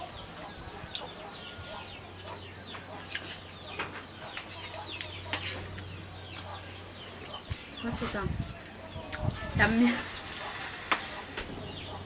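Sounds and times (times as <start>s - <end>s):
chickens calling: 0.0s - 12.0s.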